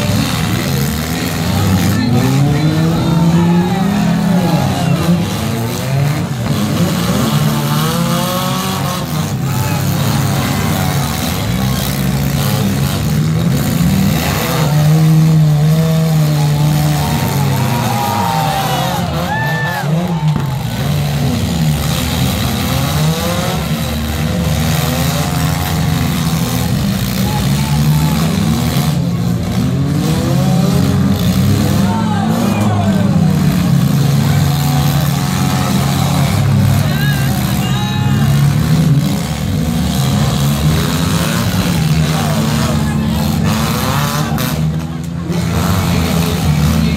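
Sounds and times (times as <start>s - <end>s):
car engines revving hard: 0.0s - 46.9s.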